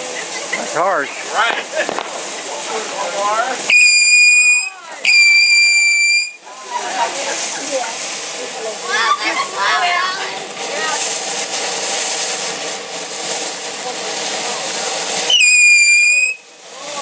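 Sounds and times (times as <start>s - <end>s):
firework fountain hissing: 0.0s - 17.0s
high firework whistle: 3.7s - 6.5s, 15.2s - 16.5s.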